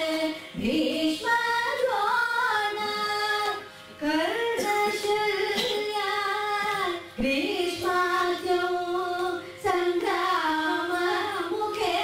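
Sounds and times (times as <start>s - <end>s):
two women singing together: 0.0s - 12.0s.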